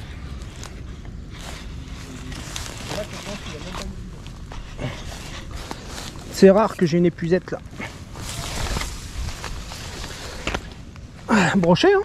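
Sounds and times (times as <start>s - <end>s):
rustling through tall weeds: 0.0s - 11.2s.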